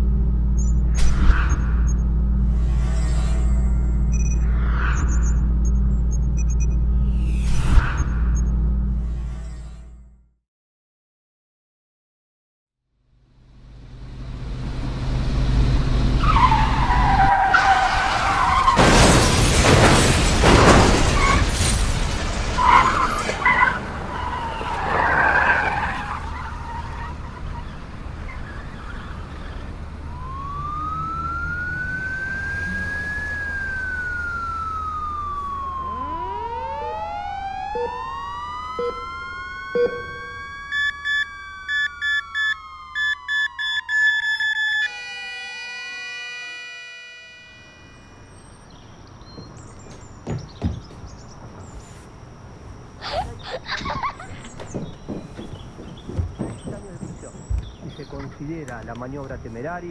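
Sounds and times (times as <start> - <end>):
siren tone rising and falling: 0.0 - 10.1, 28.8 - 48.7
screeching: 1.2 - 5.6, 16.2 - 29.9
quick regular beeping: 3.4 - 6.8, 39.8 - 45.0.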